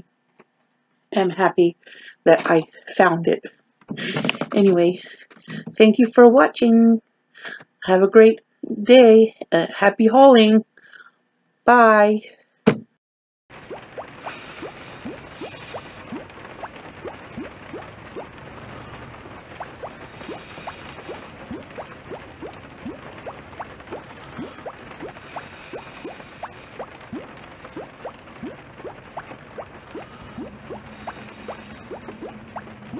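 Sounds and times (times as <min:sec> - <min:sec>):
water bubbling: 0:13.5 - 0:32.9.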